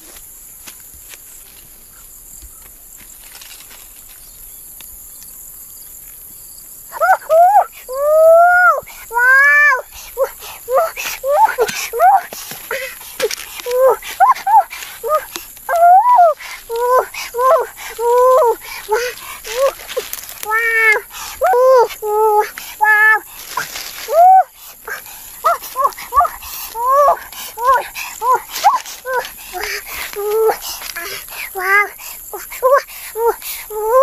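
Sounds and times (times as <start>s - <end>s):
high vocal cries: 6.9s - 34.0s.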